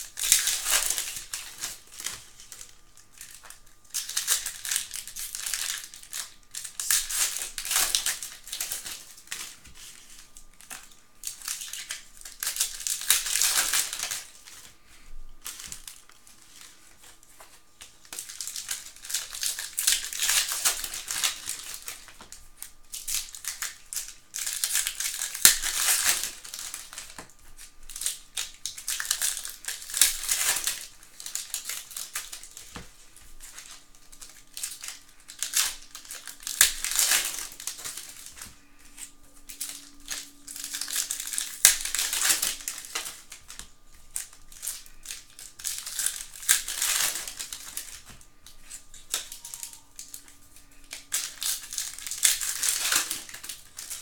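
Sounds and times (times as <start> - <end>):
plastic wrappers crinkling and tearing: 0.0 - 54.0.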